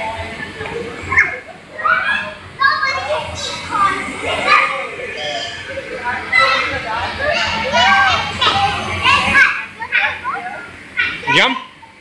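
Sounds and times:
young children talking and calling out: 0.6 - 12.0.

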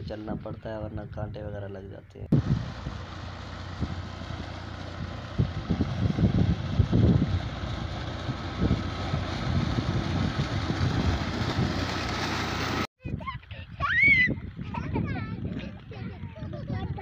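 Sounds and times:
tractor engine running: 2.3 - 12.9
water splashing into channel: 8.6 - 12.9.

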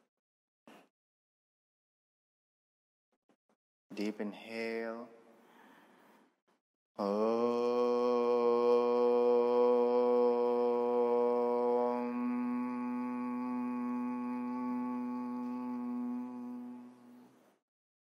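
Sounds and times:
man chanting om: 7.0 - 17.1.

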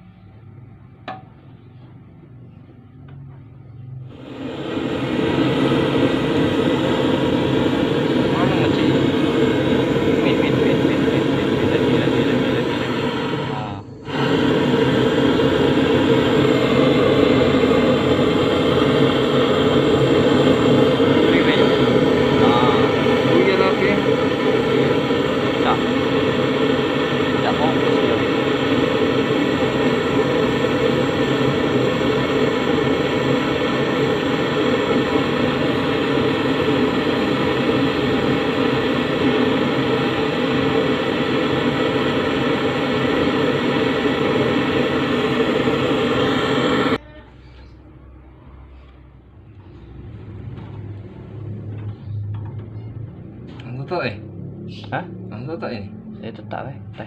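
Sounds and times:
gas torch hissing: 4.0 - 47.0.

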